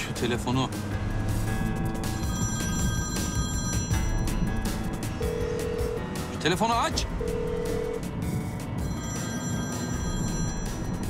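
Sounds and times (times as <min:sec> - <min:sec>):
background music: 0:00.0 - 0:11.0
steady ringing tone: 0:01.5 - 0:06.4, 0:07.1 - 0:11.0
phone ringing: 0:02.0 - 0:11.0.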